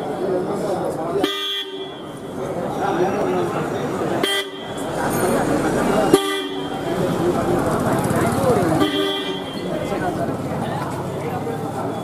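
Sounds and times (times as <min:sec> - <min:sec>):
murmur of people talking: 0:00.0 - 0:12.0
vehicle horn toots: 0:01.2 - 0:02.4, 0:04.2 - 0:04.9, 0:06.1 - 0:07.0, 0:08.8 - 0:09.9.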